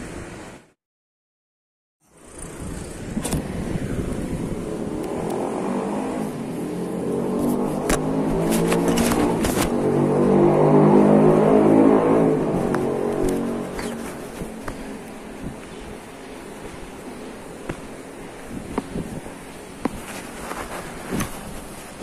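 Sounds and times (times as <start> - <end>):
motor engine running: 2.2 - 22.0.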